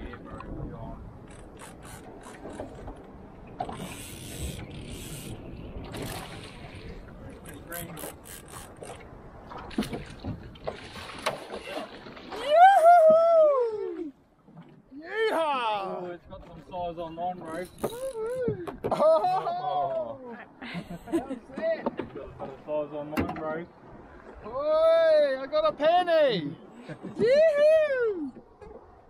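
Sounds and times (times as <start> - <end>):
fishing reel ratcheting: 3.8 - 5.4, 7.7 - 9.0
person whooping shout: 12.3 - 14.1, 27.2 - 28.4.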